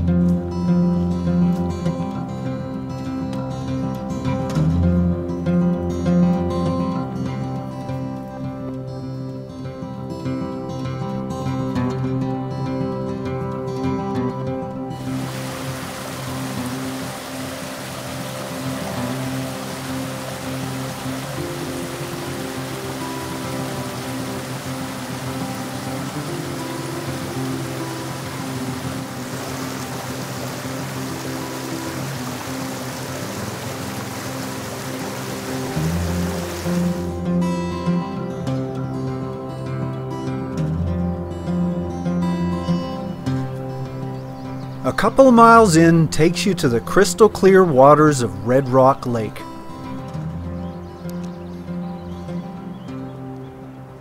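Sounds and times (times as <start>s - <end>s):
background music: 0.0s - 54.0s
creek running over rocks: 15.0s - 37.3s, 44.8s - 50.4s.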